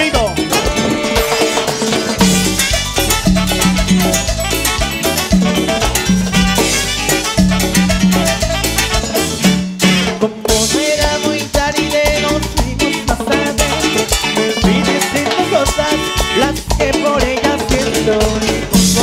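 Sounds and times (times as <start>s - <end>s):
cumbia band playing: 0.0s - 19.0s.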